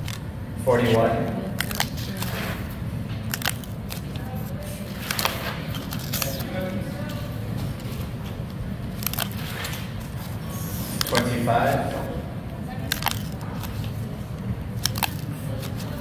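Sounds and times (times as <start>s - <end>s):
paper tickets tearing: 0.0s - 16.0s
paper rustling: 1.6s - 16.0s.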